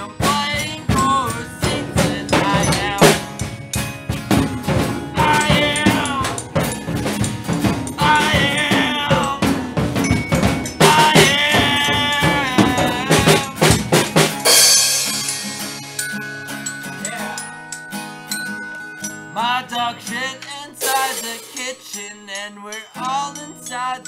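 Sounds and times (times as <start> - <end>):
person singing: 0.0 - 3.4, 4.3 - 6.8, 7.6 - 13.9, 17.0 - 17.5, 19.3 - 24.0
drum kit beat: 0.0 - 16.1, 20.1 - 24.0
held notes ringing: 0.0 - 24.0
cymbal crash: 14.4 - 16.0.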